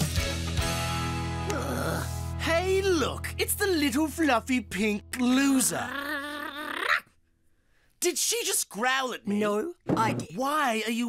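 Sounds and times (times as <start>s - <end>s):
cartoon dog-like growl: 5.7s - 7.1s.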